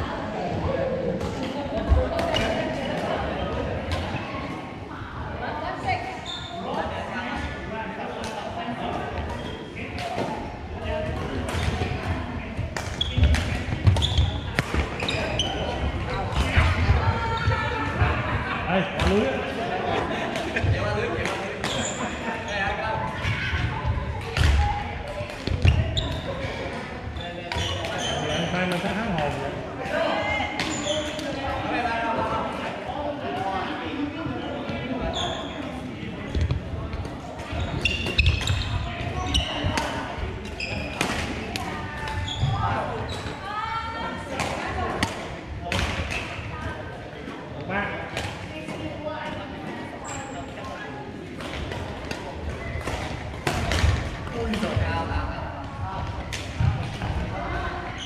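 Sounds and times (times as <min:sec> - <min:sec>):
chatter of voices: 0:00.0 - 0:58.0.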